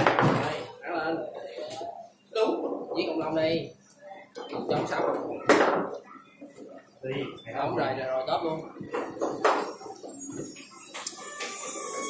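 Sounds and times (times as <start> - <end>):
foosball ball sharp crack: 0.0 - 0.6.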